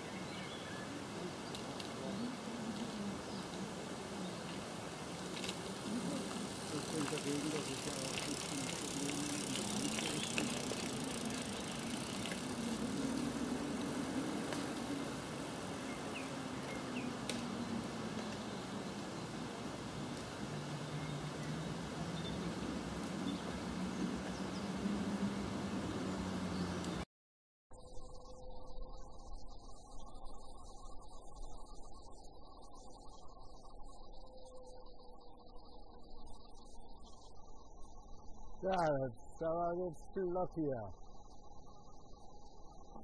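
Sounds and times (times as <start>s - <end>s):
low drone: 0.0s - 27.0s
outdoor background hiss: 0.0s - 27.0s
people talking faintly: 0.7s - 12.2s.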